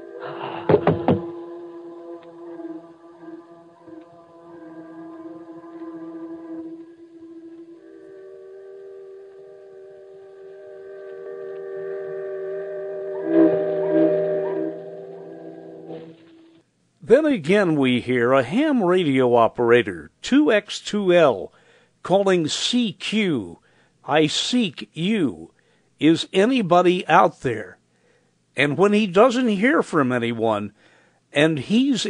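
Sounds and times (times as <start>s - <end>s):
heavy thuds: 0.4s - 1.4s
steamship whistles: 4.7s - 16.6s.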